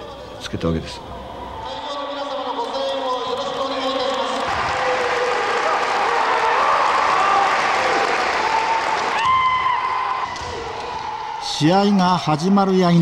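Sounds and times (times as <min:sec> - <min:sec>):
spectators applauding: 0:03.2 - 0:12.2
long held shout: 0:04.5 - 0:11.5.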